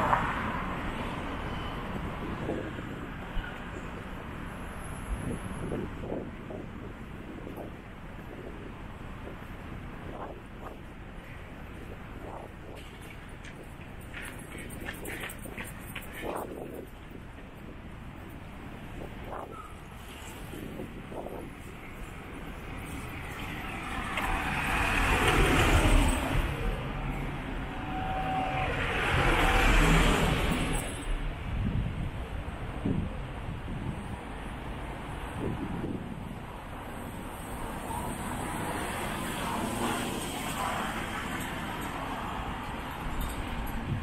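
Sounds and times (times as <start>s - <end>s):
city traffic background: 0.0s - 44.0s
vehicles passing close by: 0.0s - 44.0s.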